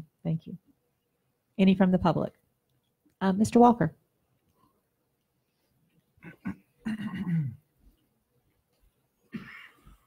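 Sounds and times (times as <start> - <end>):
man coughing: 6.2 - 7.6, 9.3 - 9.8.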